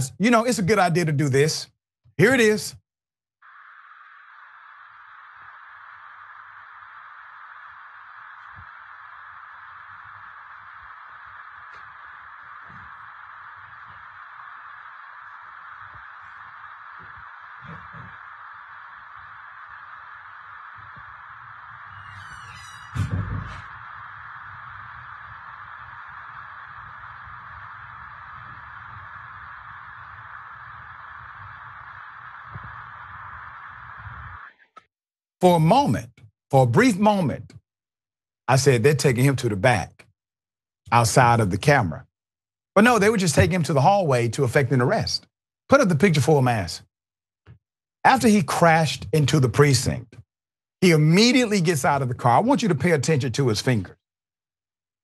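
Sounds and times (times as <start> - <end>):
rumble: 3.4 - 34.6
steady hiss: 3.4 - 34.6
loud bump: 22.6 - 23.8.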